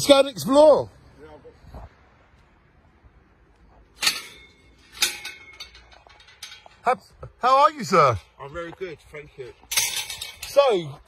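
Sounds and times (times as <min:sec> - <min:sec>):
metal gate clanking: 0:03.9 - 0:08.4, 0:09.7 - 0:11.0
metal gate clicks and rattles: 0:03.9 - 0:08.4, 0:09.7 - 0:11.0.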